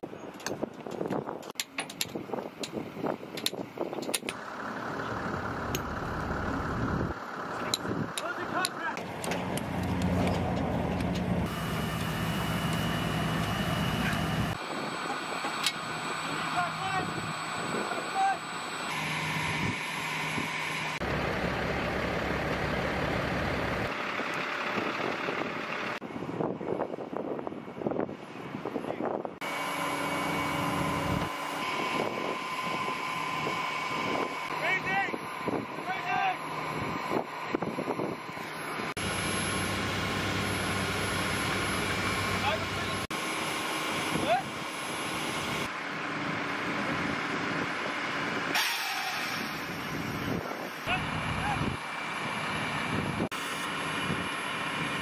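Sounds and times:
heavy military vehicles running: 0:00.2 - 0:55.0.

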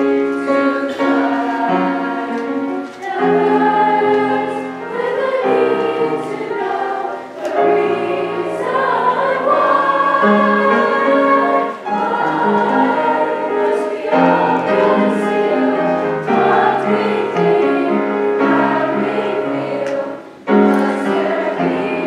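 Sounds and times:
children's choir singing: 0:00.0 - 0:22.0.

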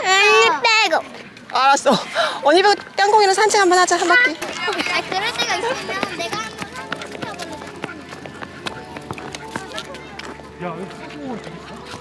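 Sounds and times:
dog's paws pattering on stone: 0:02.6 - 0:12.0
quick footsteps on stone: 0:03.7 - 0:12.0.

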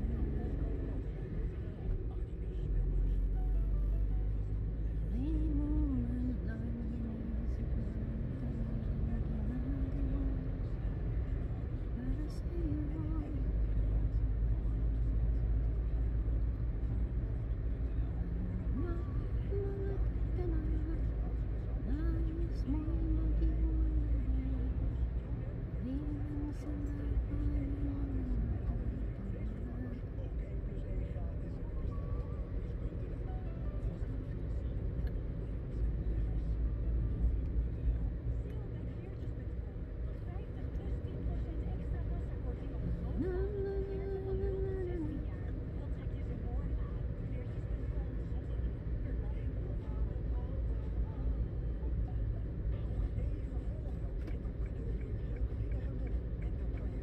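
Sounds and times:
low rumble of engine and tyres: 0:00.0 - 0:57.0.

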